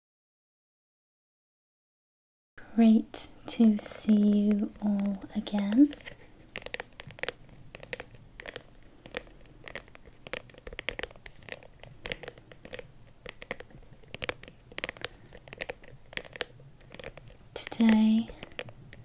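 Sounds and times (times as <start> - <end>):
fingernails tapping on hard case: 4.5 - 19.0.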